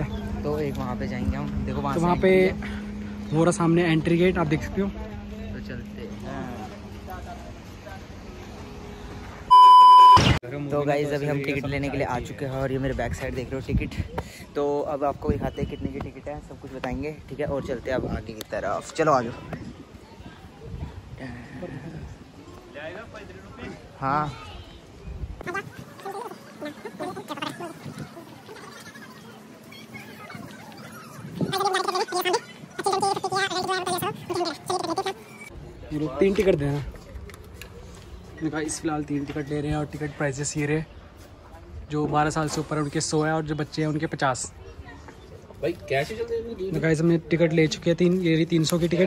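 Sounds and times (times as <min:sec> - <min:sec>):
electronic beep: 0:09.5 - 0:10.4.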